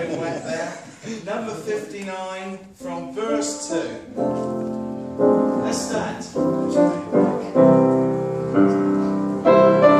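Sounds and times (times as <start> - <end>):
piano playing slow chords: 3.0 - 9.9.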